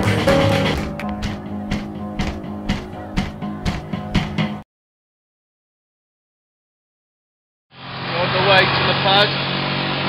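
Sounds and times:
small motorcycle engine running: 0:07.8 - 0:10.0.

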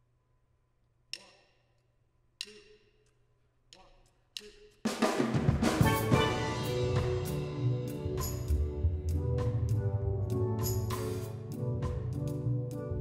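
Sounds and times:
steel drum band reggae groove: 0:05.4 - 0:12.3.

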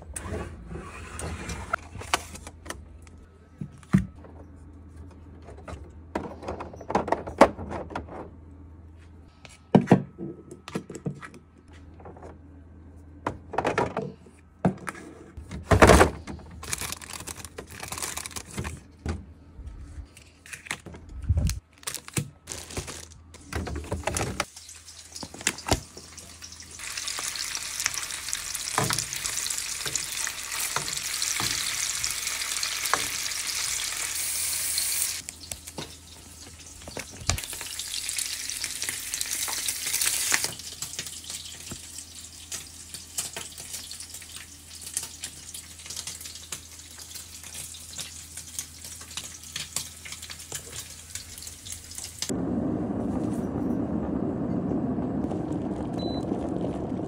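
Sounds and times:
electric kettle boiling: 0:52.3 - 0:57.0.

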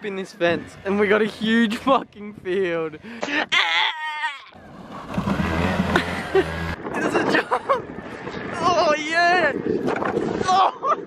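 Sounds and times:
wind rushing on microphone: 0:00.3 - 0:03.0, 0:04.6 - 0:11.0
dirt bike engine hum: 0:04.6 - 0:10.4
young man yelling excitedly: 0:08.5 - 0:09.6, 0:10.4 - 0:11.0.

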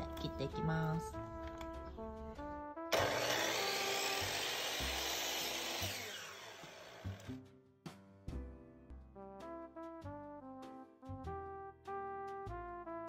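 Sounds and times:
miter saw cutting wood: 0:02.9 - 0:07.3
saw blade spinning down: 0:02.9 - 0:07.3.

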